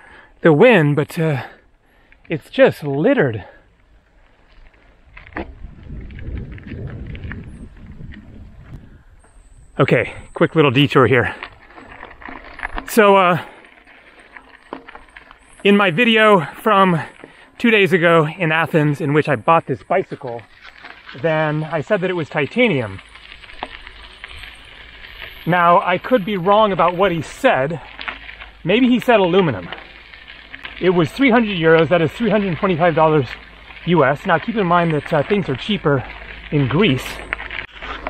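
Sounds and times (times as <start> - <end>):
bike tyres rolling on dirt: 0.0 - 38.0
wind buffeting microphone: 5.0 - 10.4.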